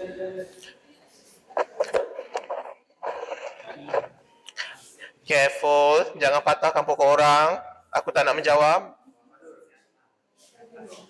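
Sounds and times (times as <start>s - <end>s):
indistinct voices talking: 1.3s - 4.8s.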